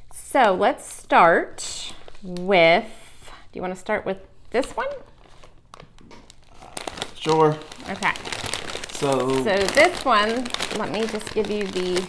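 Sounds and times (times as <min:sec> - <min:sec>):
plastic bag crinkling: 0:04.6 - 0:12.0.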